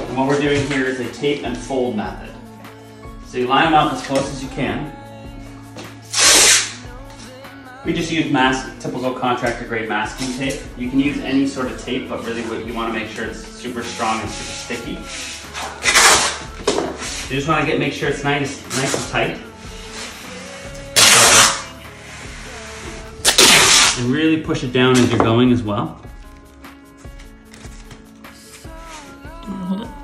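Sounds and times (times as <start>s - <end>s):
quiet background music: 0.0s - 30.0s
masking tape ripping off roll: 6.1s - 6.8s, 14.3s - 17.3s, 21.0s - 21.7s, 22.7s - 24.1s.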